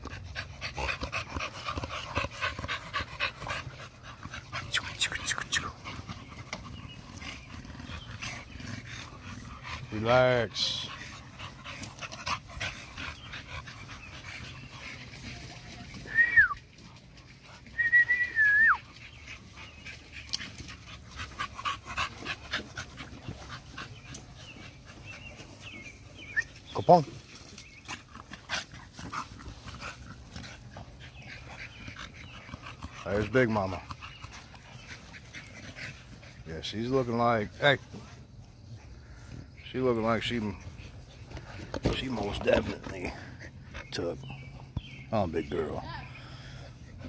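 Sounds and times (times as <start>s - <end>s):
dogs panting and snuffling: 0.0s - 47.0s.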